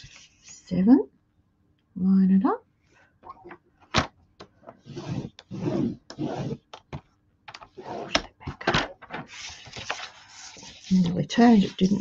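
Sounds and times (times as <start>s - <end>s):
cardstock rustling: 8.0s - 12.0s.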